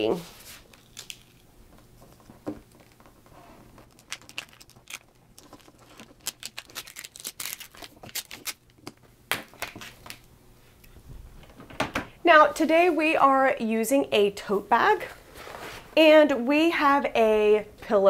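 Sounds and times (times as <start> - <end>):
vinyl peeling and crackling: 0.1 - 10.3.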